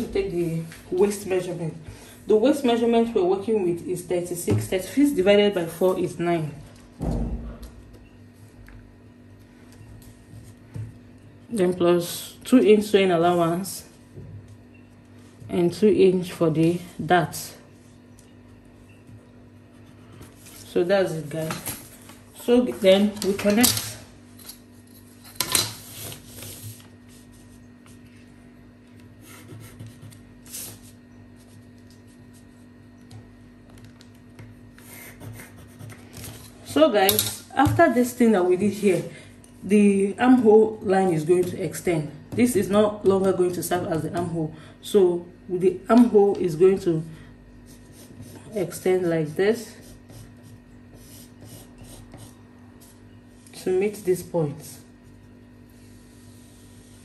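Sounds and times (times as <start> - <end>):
steady low hum: 0.0 - 57.0
pencil scratching on paper: 29.2 - 31.0, 34.8 - 36.5, 47.7 - 52.9.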